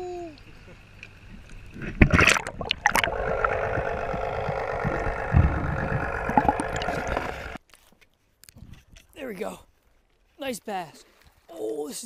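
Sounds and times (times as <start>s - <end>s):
water gurgling and lapping: 1.6s - 7.6s
fish splashing into water: 2.0s - 7.6s.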